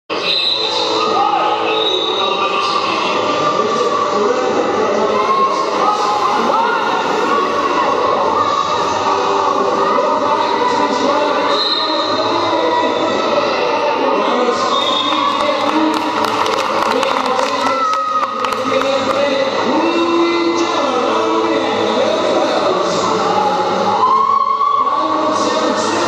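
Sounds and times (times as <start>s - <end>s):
crowd voices: 0.1s - 26.0s
music over loudspeakers: 0.1s - 26.0s.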